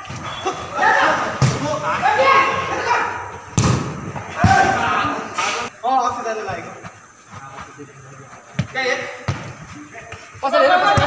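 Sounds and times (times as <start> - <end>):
ball being kicked: 3.5 - 4.9, 8.6 - 10.2.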